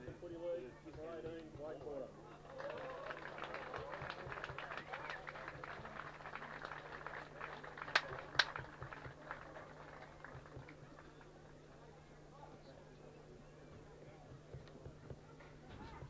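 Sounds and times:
crowd applauding: 0:02.4 - 0:11.6
loud sharp claps: 0:02.5 - 0:11.4.

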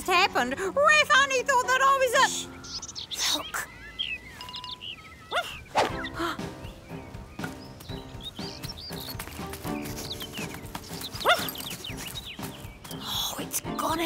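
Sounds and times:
dog crying: 0:05.2 - 0:05.6
cartoon background music: 0:05.4 - 0:14.0.

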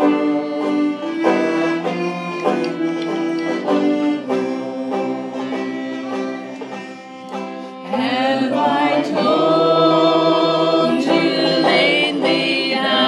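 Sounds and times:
person singing: 0:00.0 - 0:02.2, 0:07.8 - 0:13.0
plucked string instruments: 0:00.0 - 0:13.0.

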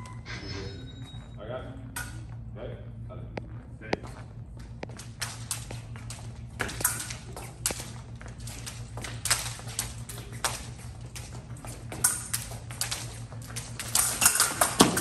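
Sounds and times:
metallic pings of blades: 0:00.0 - 0:01.4
steady low hum: 0:00.0 - 0:15.0
fencers' footwork taps and stamps: 0:03.4 - 0:15.0.

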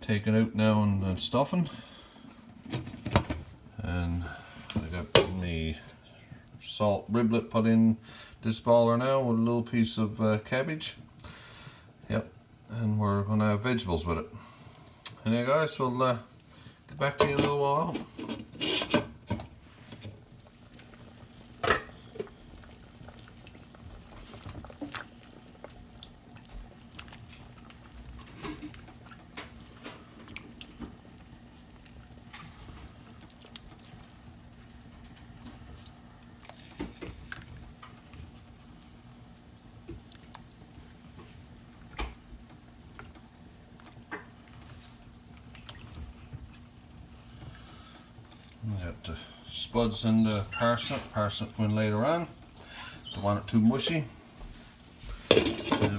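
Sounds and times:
water boiling and bubbling: 0:01.0 - 0:55.9.

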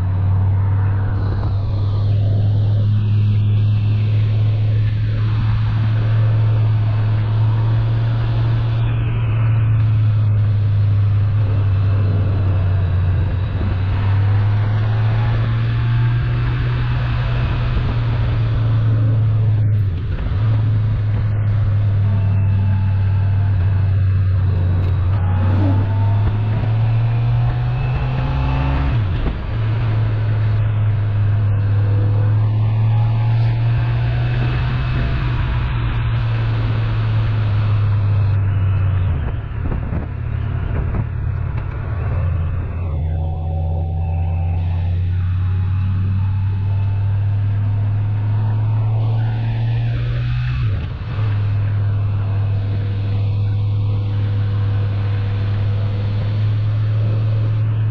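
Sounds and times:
motorcycle engine drone: 0:00.0 - 0:57.9
wind and road noise: 0:00.0 - 0:57.9.

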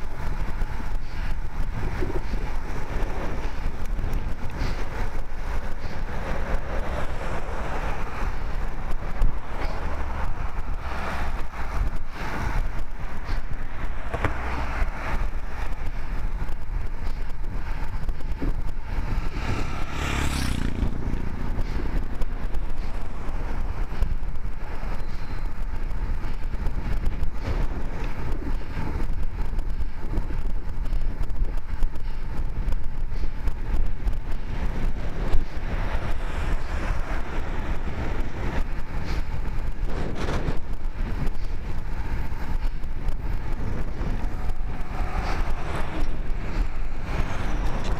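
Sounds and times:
vehicle passing: 0:00.0 - 0:30.1, 0:33.2 - 0:47.9
road noise: 0:00.0 - 0:47.9
wind noise on microphone: 0:00.0 - 0:47.9.

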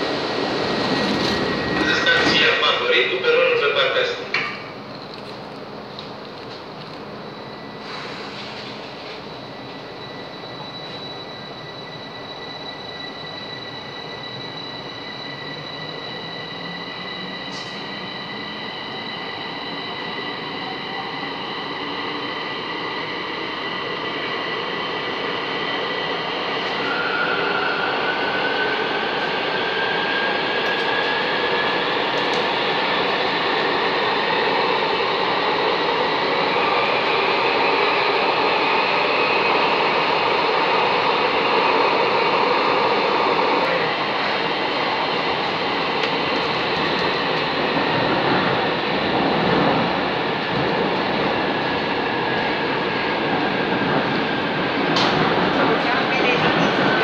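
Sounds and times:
metro train running noise: 0:00.0 - 0:57.0
train high whine: 0:00.0 - 0:57.0.

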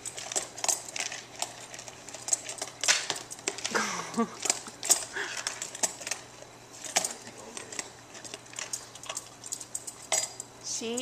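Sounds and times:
dog crunching dry food: 0:00.0 - 0:10.5.

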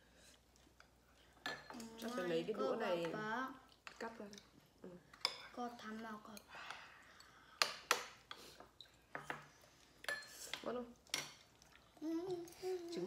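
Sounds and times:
utensils clinking on ceramic bowls: 0:01.4 - 0:02.4, 0:07.2 - 0:11.5.

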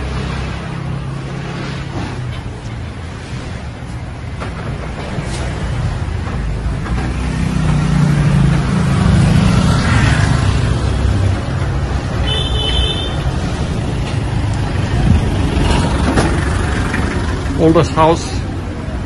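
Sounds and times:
passing cars and vans: 0:00.0 - 0:19.0.

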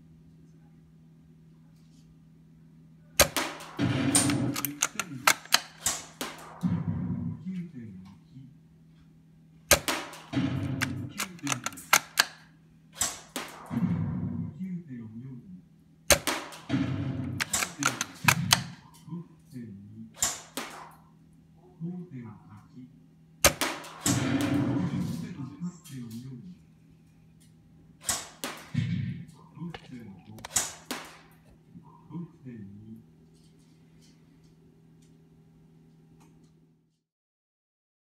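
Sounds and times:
airsoft rifle shot: 0:03.2 - 0:06.8, 0:09.7 - 0:12.4, 0:16.1 - 0:18.8, 0:23.4 - 0:25.1
rifle bolt clicking and rattling: 0:04.2 - 0:06.1, 0:10.8 - 0:12.4, 0:17.4 - 0:18.7.

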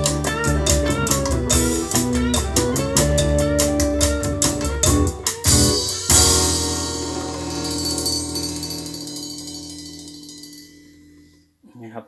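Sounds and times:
recorded music through speakers: 0:00.0 - 0:11.2.

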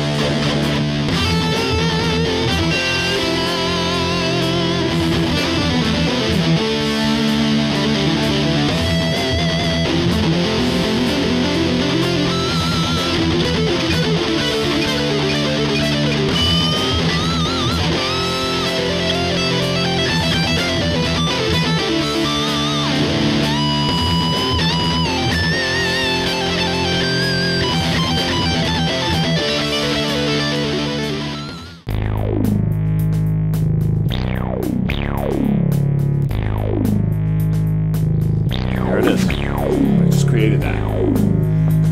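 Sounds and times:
distorted electric guitar: 0:00.0 - 0:41.9
plucked bass guitar notes: 0:00.0 - 0:41.9.

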